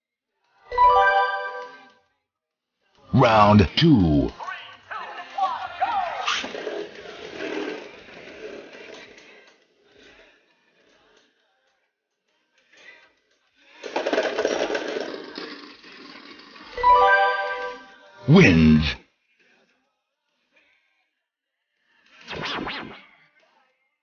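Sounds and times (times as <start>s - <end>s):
spinning tops whirring and clashing: 13.9s - 16.8s.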